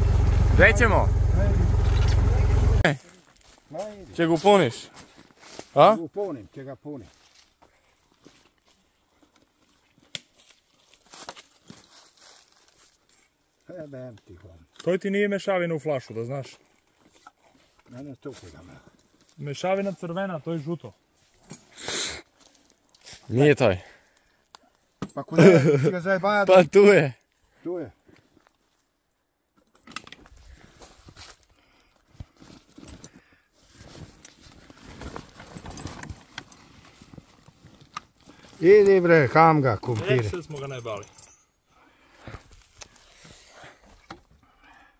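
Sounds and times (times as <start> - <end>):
fabric bag rustling: 33.7 - 38.2.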